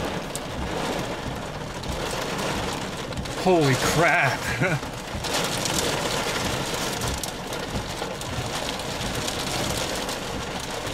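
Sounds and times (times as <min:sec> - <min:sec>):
rain pelting a vehicle: 0:00.0 - 0:10.9.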